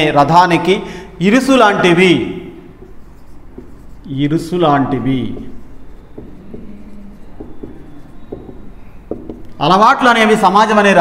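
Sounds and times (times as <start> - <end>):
marker writing on whiteboard: 2.6 - 9.8.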